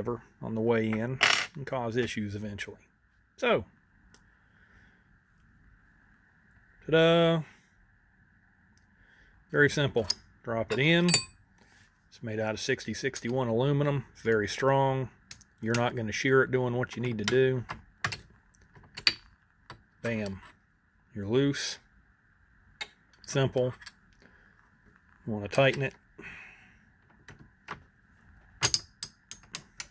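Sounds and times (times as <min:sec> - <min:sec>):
metal wrench clicks and clinks: 0:28.6 - 0:29.6.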